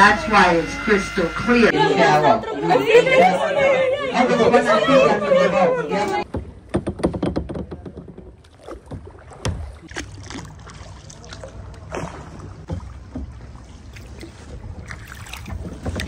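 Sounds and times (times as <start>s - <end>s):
paddle splashing in water: 6.2s - 16.0s.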